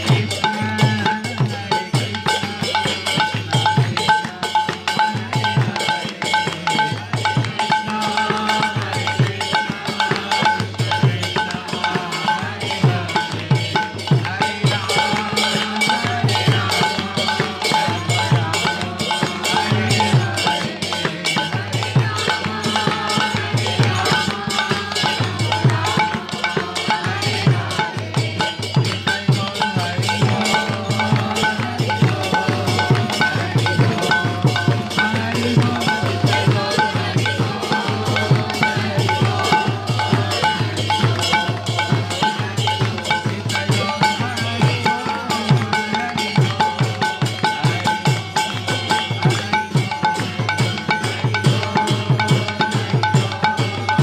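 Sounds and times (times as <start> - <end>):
hand drum rhythm: 0.0 - 54.0
small hand cymbals ringing: 0.0 - 54.0.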